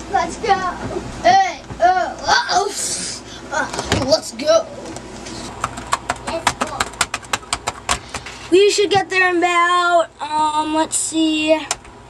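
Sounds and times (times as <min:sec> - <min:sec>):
rapid sharp clicks: 0:05.6 - 0:08.3.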